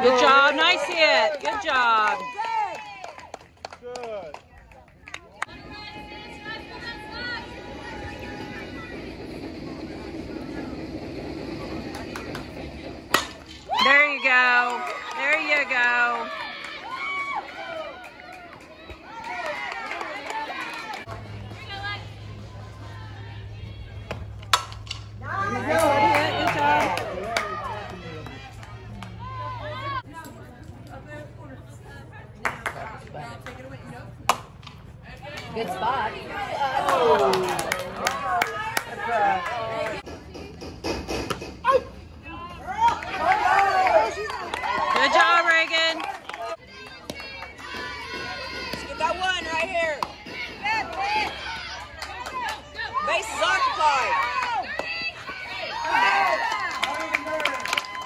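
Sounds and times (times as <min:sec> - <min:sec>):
spectators chattering: 0:04.4 - 0:13.2, 0:15.3 - 0:40.9, 0:41.6 - 0:57.7
bat cracking against ball: 0:13.1 - 0:13.6, 0:24.1 - 0:25.2
bat hitting ball: 0:13.1 - 0:13.7, 0:24.1 - 0:27.0.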